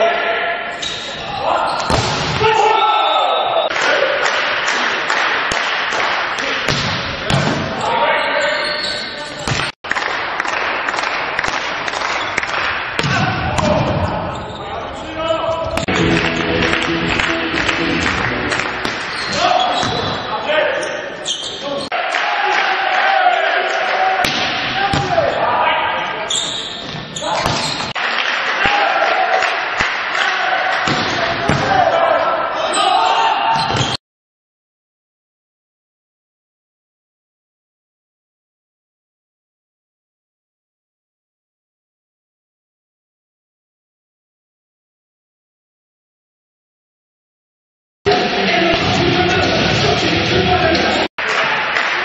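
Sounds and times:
voices in a hall: 0.0s - 9.5s, 12.9s - 33.7s, 48.1s - 52.0s
volleyball impacts echoing: 1.8s - 2.6s, 4.3s - 7.8s, 9.4s - 14.2s, 15.6s - 20.2s, 24.2s - 25.4s, 30.7s - 32.0s.

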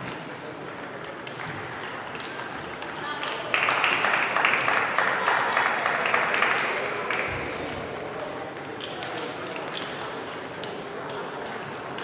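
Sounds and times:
table tennis balls clicking: 0.1s - 4.7s, 6.4s - 12.0s.

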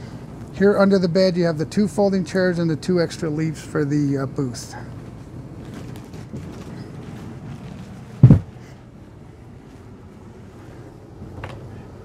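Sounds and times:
low steady hum: 0.0s - 12.0s
bed platform thumping shut: 8.2s - 8.5s.

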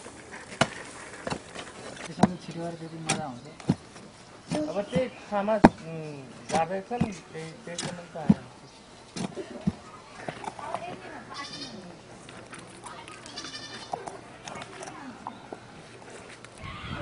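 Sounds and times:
faint voices: 1.9s - 17.0s
goat bleating: 11.3s - 11.8s, 13.3s - 13.9s.

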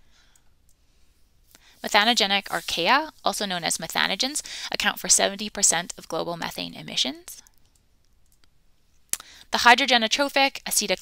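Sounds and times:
person speaking: 1.8s - 7.4s.

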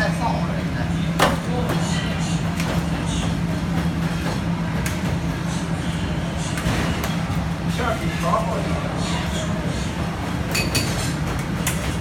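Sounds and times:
stove and extraction roar: 0.0s - 12.0s.

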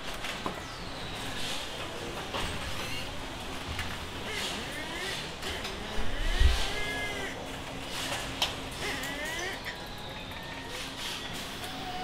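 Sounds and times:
machinery whine: 8.8s - 12.0s.

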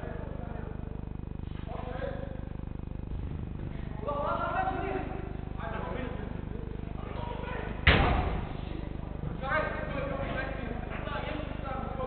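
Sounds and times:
football thud: 7.8s - 8.6s.

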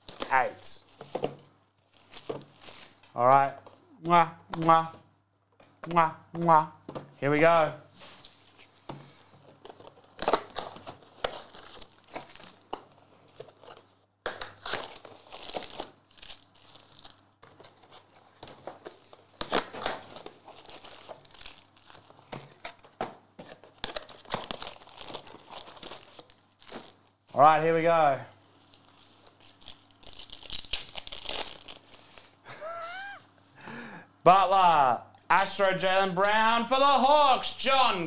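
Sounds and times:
foil packs crinkling: 0.0s - 3.1s, 9.5s - 27.2s, 28.6s - 32.4s.

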